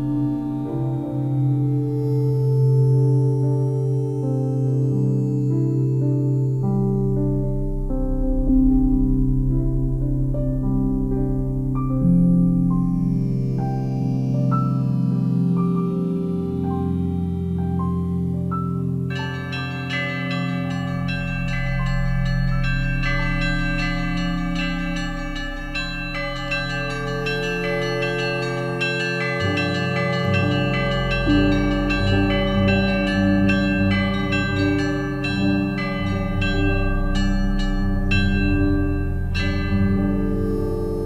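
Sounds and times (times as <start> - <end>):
held low tones: 6.3 - 41.0
chiming bell-like notes: 18.7 - 41.0.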